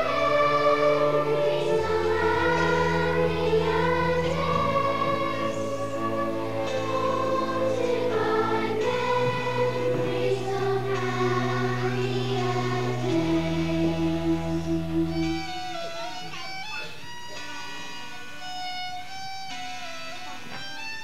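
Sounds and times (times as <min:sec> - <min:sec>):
children's choir singing: 0:00.0 - 0:16.1
instrumental accompaniment: 0:00.0 - 0:21.0.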